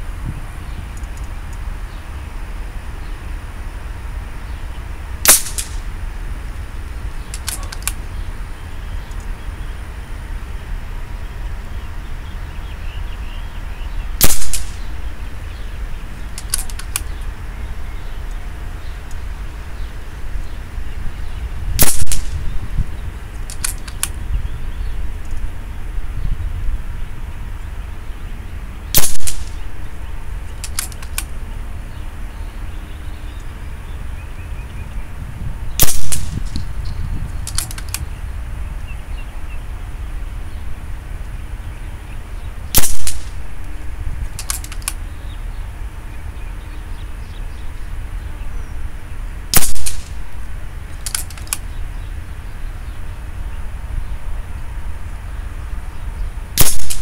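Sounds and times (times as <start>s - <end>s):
air rifle shot crack: 5.2s - 5.9s, 14.2s - 15.2s, 21.8s - 22.5s, 28.9s - 30.0s, 35.8s - 36.7s, 42.7s - 43.7s, 49.5s - 51.6s, 56.6s - 57.0s
rifle action clicks: 5.3s - 5.8s, 7.3s - 8.0s, 14.2s - 14.8s, 16.4s - 17.1s, 23.4s - 24.2s, 28.9s - 29.6s, 30.6s - 31.3s, 37.4s - 38.0s, 42.8s - 43.4s, 44.3s - 45.0s, 49.5s - 50.2s, 50.9s - 51.6s, 56.6s - 57.0s.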